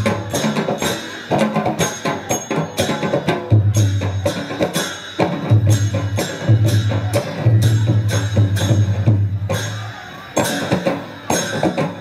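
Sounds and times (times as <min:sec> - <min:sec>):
cymbal clashes: 0:00.0 - 0:12.0
drum strokes: 0:00.0 - 0:12.0.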